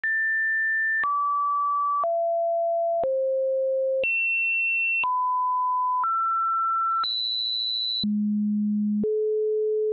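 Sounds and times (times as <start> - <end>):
sine tones changing pitch: 0.0 - 9.9.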